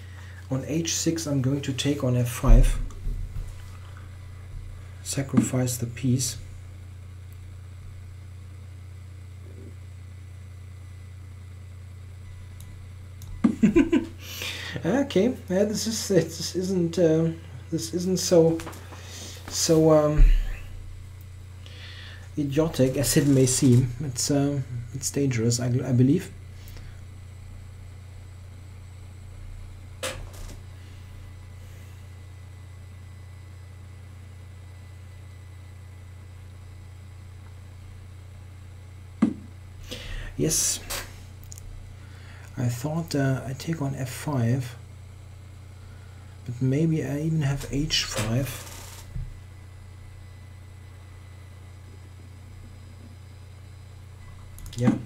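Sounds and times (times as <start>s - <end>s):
low room hum: 0.0s - 55.0s.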